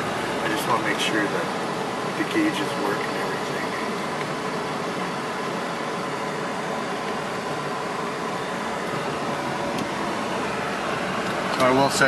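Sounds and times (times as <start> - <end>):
car engine running in cabin: 0.0 - 12.0.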